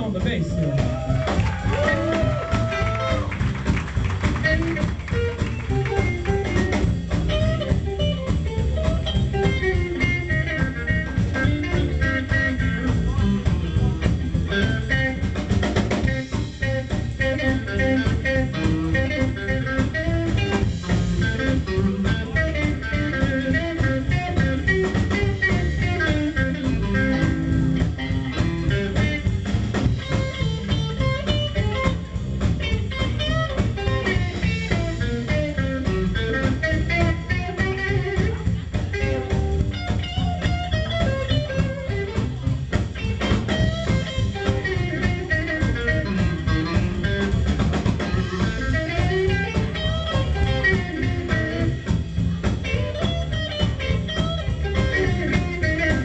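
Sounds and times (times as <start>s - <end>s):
drum kit: 0.0s - 56.0s
electric guitar: 0.0s - 56.0s
upright double bass: 0.0s - 56.0s.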